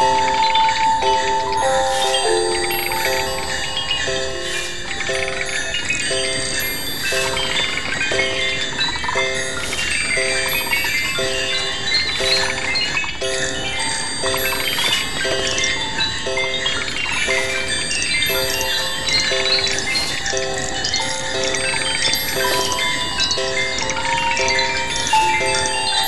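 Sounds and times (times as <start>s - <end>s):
looped chord: 0.0s - 26.0s
tinkling bell-like tones: 0.0s - 26.0s.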